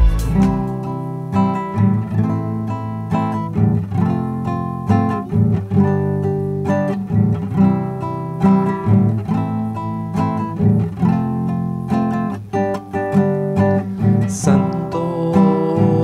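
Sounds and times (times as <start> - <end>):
classical guitar strummed: 0.0 - 16.0.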